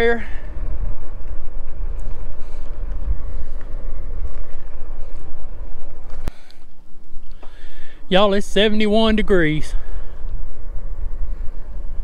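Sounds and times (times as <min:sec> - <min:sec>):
low rumble: 0:00.0 - 0:12.0
wind buffeting microphone: 0:00.0 - 0:12.0.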